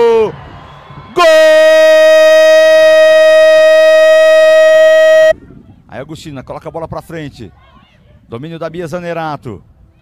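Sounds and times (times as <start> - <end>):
commentator shouting goal: 1.2 - 5.3.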